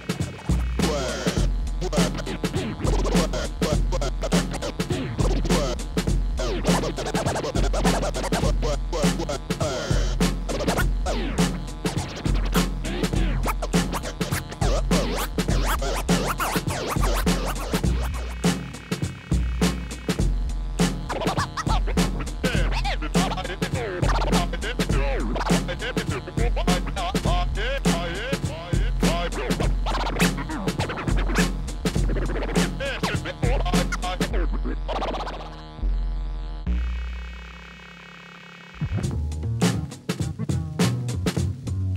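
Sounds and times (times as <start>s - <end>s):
beat with bass line: 0.0s - 37.7s, 38.7s - 41.9s
turntable scratching: 0.0s - 41.9s.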